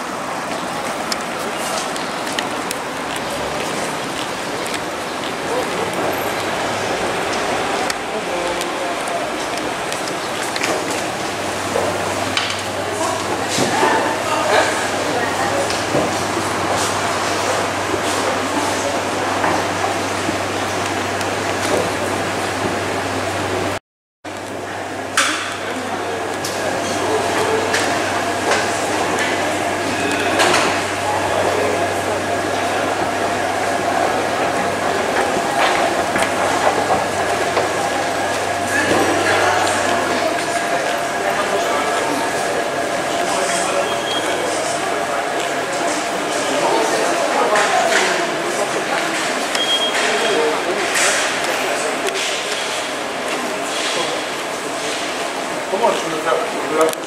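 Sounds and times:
indistinct voices: 0.0s - 23.8s, 24.4s - 57.0s.

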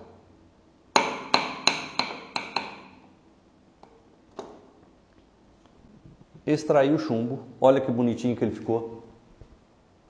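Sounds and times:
mallet tapping steel punch: 1.0s - 3.0s.

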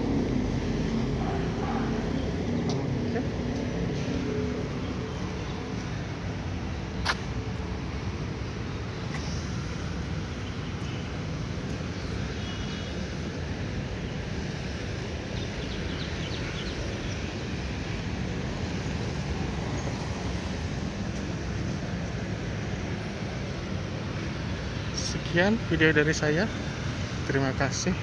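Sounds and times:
city street traffic rumble: 0.0s - 28.0s.

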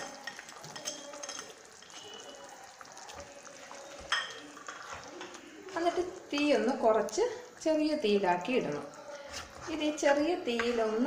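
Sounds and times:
sauce sizzling in a pan: 0.0s - 11.0s
spatula stirring thick sauce: 0.0s - 11.0s
spatula scraping and tapping: 3.6s - 6.5s.

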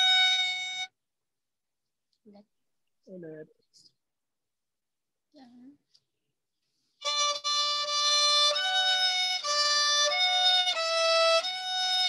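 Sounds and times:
violin bowed note: 0.0s - 0.9s, 7.0s - 12.0s.

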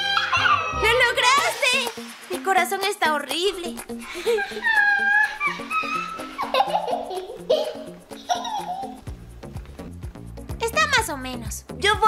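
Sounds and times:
light background music: 0.0s - 12.0s
child giggling and laughing: 4.0s - 9.0s.

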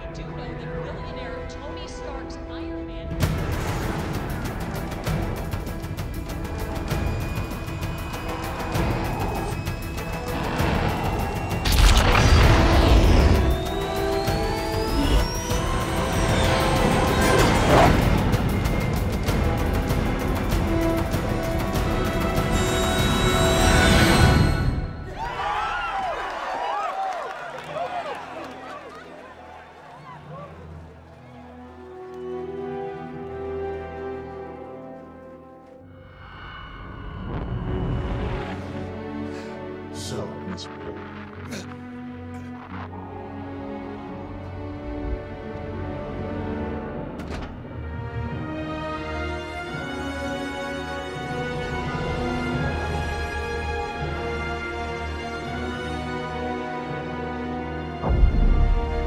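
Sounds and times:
tense orchestral score: 0.0s - 26.1s, 27.7s - 59.0s.

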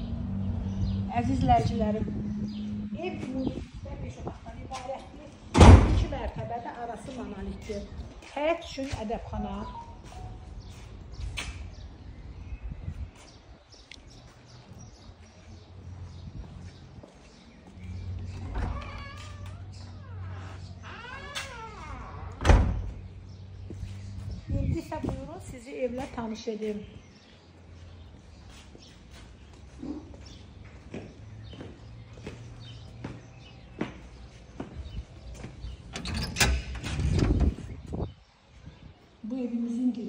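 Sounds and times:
door banging shut: 5.5s - 6.2s, 18.4s - 23.0s, 35.9s - 37.7s
door creaking on hinges: 5.5s - 6.2s, 18.1s - 23.2s, 35.6s - 38.0s.

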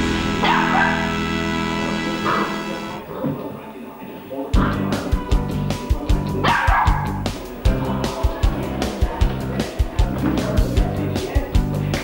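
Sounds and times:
background music with beat: 0.0s - 3.0s, 4.6s - 12.0s
puppy barking: 0.4s - 1.2s, 2.2s - 2.6s, 6.4s - 7.2s.

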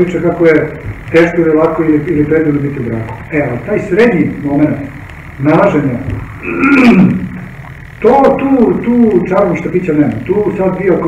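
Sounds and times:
man's hesitant ehh: 6.4s - 7.4s.

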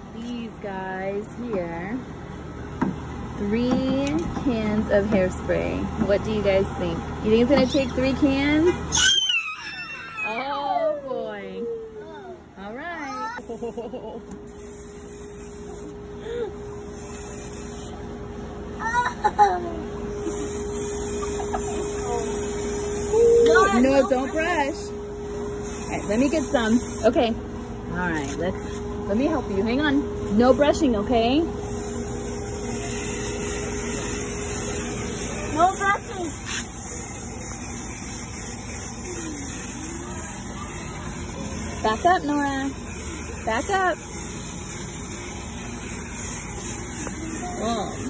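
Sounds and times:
aerosol can spraying: 14.5s - 16.0s, 16.8s - 17.9s, 20.2s - 23.1s, 25.6s - 27.1s, 31.6s - 48.0s
faint children's voices: 38.9s - 41.6s.

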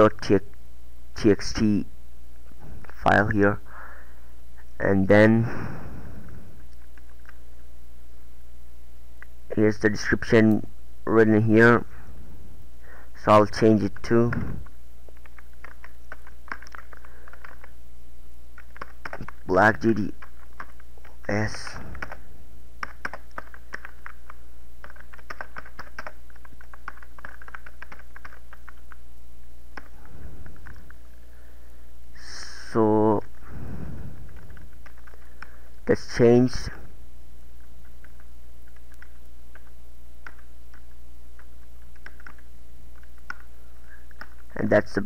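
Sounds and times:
steady low hum: 0.0s - 45.0s
typing on computer keyboard: 15.2s - 17.7s, 18.6s - 19.4s, 20.1s - 22.2s, 22.8s - 29.0s, 34.3s - 35.5s, 38.0s - 43.5s.

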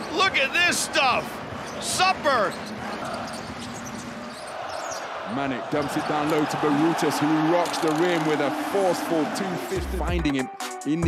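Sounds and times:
arena crowd noise: 0.0s - 10.2s
ball and shoe squeaks on court: 1.4s - 5.1s.

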